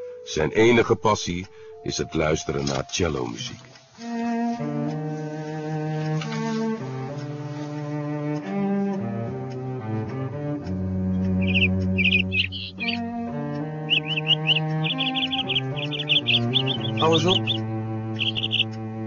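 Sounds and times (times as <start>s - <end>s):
slow cello music: 0.0s - 19.0s
finch chirping: 11.2s - 18.8s.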